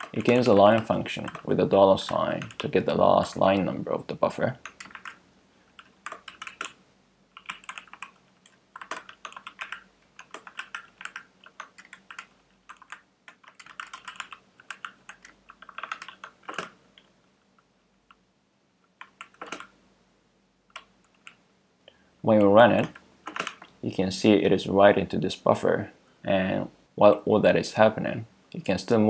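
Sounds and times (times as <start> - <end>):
typing on computer keyboard: 0.0 - 3.7, 4.6 - 5.2, 5.8 - 17.1, 19.0 - 19.8, 20.7 - 21.4, 22.8 - 23.7.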